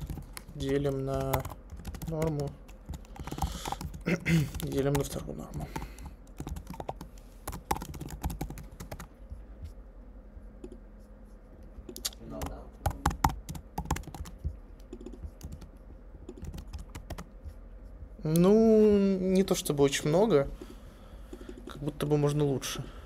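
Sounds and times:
computer keyboard typing: 0:00.0 - 0:09.2, 0:11.9 - 0:17.6.

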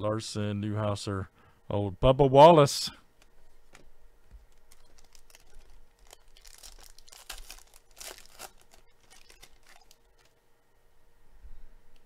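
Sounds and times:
foil wrapper tearing and crinkling: 0:04.5 - 0:10.3.

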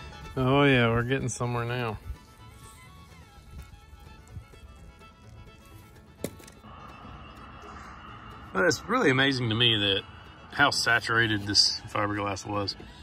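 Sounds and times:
faint background music: 0:00.0 - 0:13.0.

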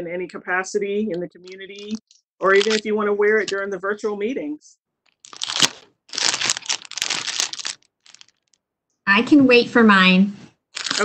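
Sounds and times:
crinkling handling noise: 0:01.4 - 0:03.7, 0:05.0 - 0:08.6, 0:10.7 - 0:11.0.

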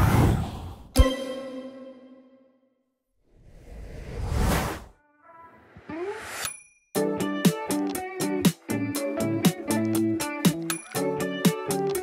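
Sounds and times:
whoosh: 0:03.2 - 0:05.0.

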